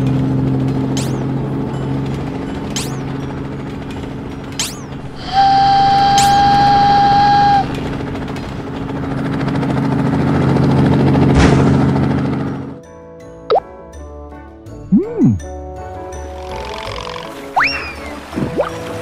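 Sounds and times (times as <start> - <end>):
toy helicopter engine noise: 0.0 - 11.2, 16.2 - 17.7
held whistle tone: 5.1 - 7.9
light music: 12.8 - 19.0
cartoon plopping sweeps: 14.9 - 15.5.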